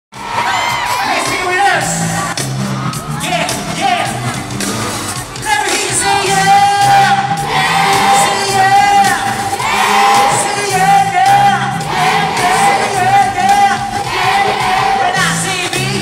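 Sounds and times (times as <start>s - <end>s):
audience shouting and cheering: 0.1s - 16.0s
live pop band with singer: 0.2s - 16.0s.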